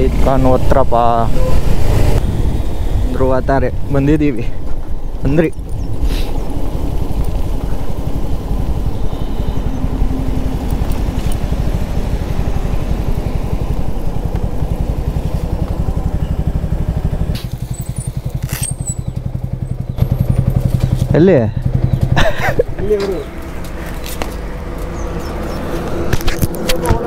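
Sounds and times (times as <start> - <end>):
motorcycle engine running: 0.0 - 27.0.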